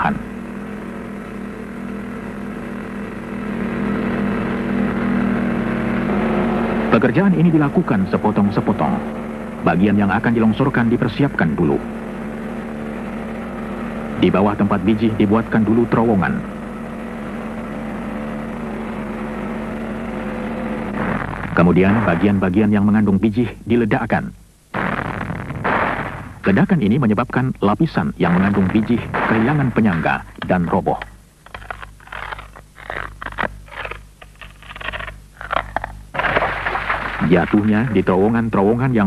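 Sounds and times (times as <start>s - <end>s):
low drone with held tones: 0.0s - 24.1s
steady low hum: 0.0s - 39.0s.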